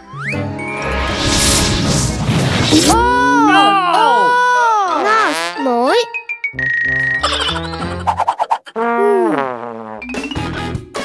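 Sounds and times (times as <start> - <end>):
child wailing: 2.9 - 4.9.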